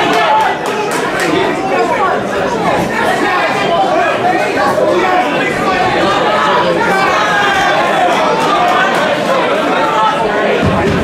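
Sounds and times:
crowd chatter in echoing hall: 0:00.0 - 0:11.0.

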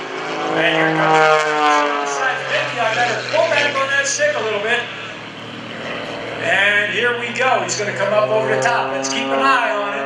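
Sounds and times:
plane engine droning: 0:00.0 - 0:10.0.

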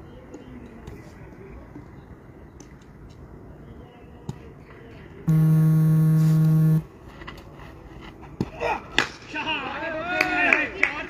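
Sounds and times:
low buzzing tone: 0:05.3 - 0:06.8.

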